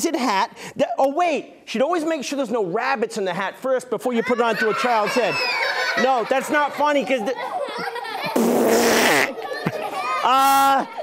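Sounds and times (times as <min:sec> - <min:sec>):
raspy fart noise: 0:08.2 - 0:09.4.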